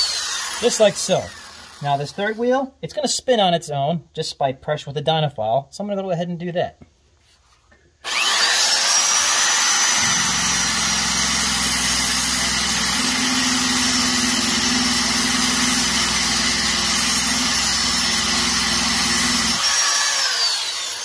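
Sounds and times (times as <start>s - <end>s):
belt sander whining: 0.0s - 2.4s, 8.0s - 21.0s.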